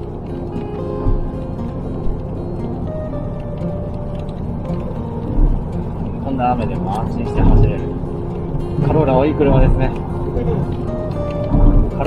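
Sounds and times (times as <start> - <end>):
faint music: 0.0 - 12.0
tyre noise on wet road: 0.0 - 12.0
low thump: 7.3 - 7.9, 11.5 - 12.0.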